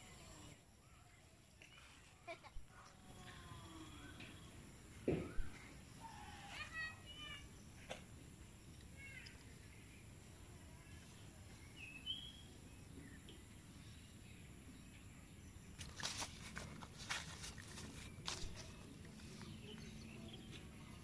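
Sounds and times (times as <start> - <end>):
faint bird chirps: 0.0 - 8.0, 8.7 - 16.2
rustling on grass and leaves: 15.8 - 20.1.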